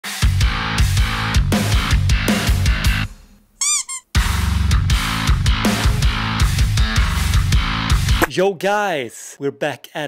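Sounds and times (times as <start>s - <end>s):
heavy metal music: 4.2s - 8.2s.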